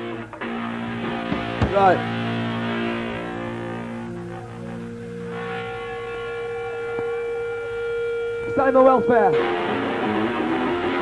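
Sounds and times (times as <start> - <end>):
electric guitar feedback tone: 0.0 - 11.0.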